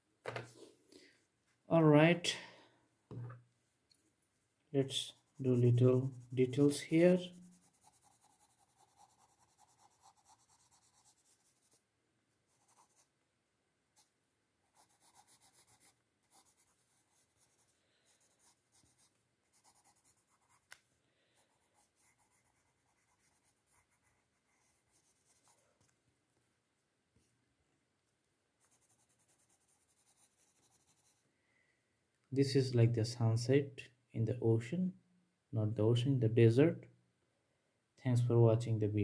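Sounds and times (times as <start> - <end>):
pencil scratching on paper: 5.0 - 11.8, 12.5 - 13.1, 14.0 - 20.8, 21.4 - 25.6, 28.6 - 31.2.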